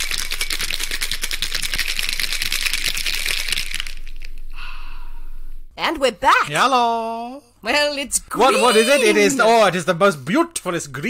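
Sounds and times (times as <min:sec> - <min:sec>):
ice rattling in cocktail shaker: 0:00.0 - 0:04.3.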